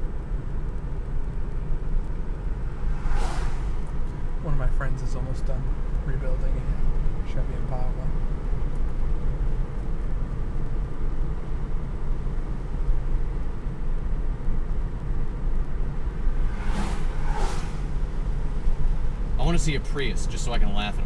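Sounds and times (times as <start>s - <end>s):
tyre and road rumble: 0.7s - 20.8s
brief rushing sound: 2.5s - 4.6s, 16.0s - 19.4s.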